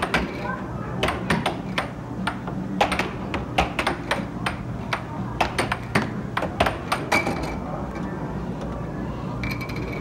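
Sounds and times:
air hockey puck clacking: 0.0s - 0.4s, 1.0s - 7.6s
steady low hum: 0.0s - 10.0s.

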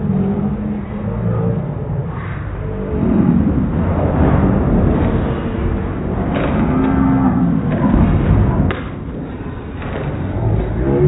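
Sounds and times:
deep moaning tone: 0.0s - 11.0s
slowed low rumble: 0.0s - 11.0s.

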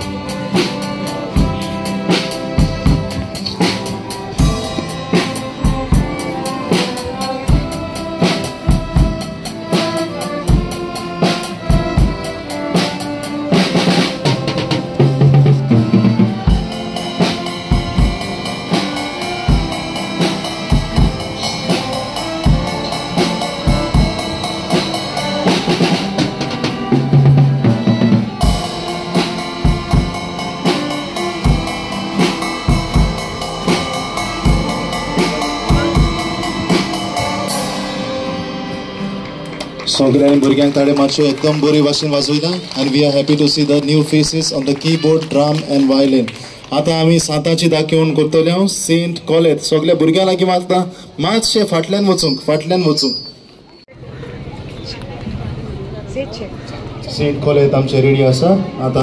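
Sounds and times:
drum kit beat: 0.0s - 41.5s
guitars playing: 0.0s - 43.9s
violins playing: 0.0s - 46.4s
keyboards playing: 0.0s - 54.8s.

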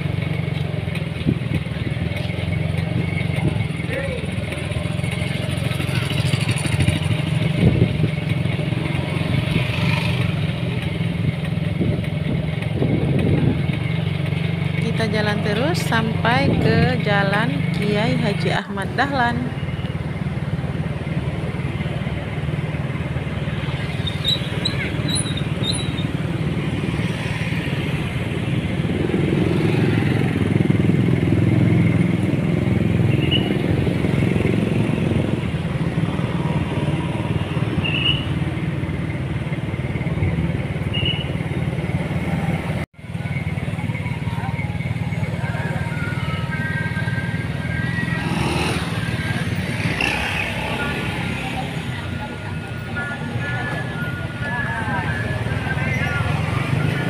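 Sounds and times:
cars passing: 0.0s - 57.0s
motorcycles passing: 0.0s - 57.0s.

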